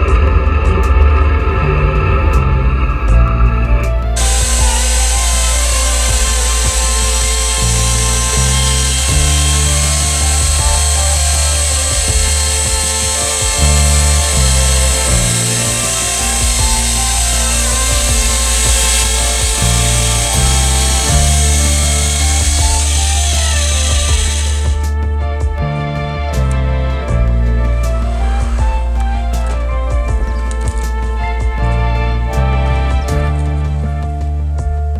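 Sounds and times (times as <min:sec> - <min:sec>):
background music with bass line: 0:00.0 - 0:34.9
electric chainsaw cutting log: 0:04.2 - 0:24.9.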